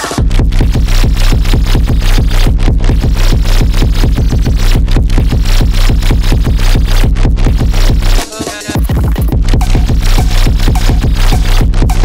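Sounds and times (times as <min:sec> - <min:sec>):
electronic music with heavy bass: 0:00.0 - 0:12.0.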